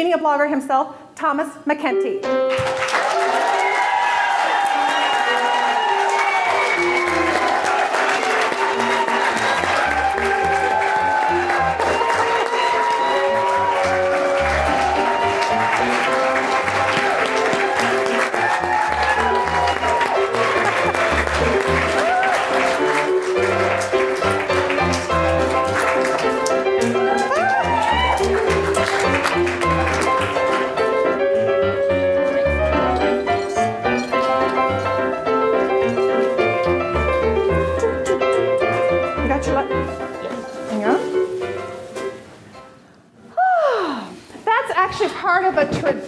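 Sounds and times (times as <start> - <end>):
audience applauding: 2.5 - 31.2.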